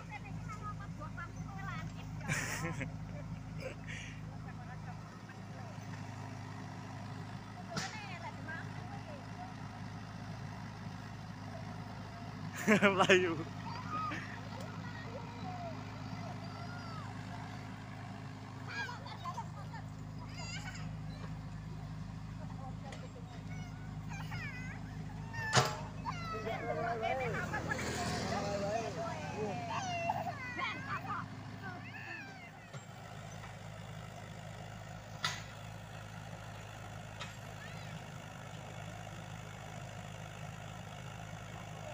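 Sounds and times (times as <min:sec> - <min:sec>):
diesel engines running: 0:00.0 - 0:41.9.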